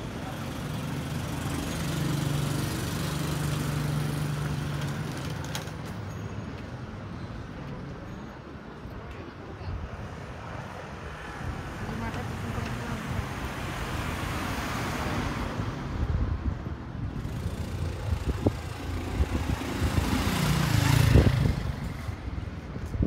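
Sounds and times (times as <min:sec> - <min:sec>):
vehicles passing: 0:00.0 - 0:23.0
low engine passing: 0:17.1 - 0:22.4.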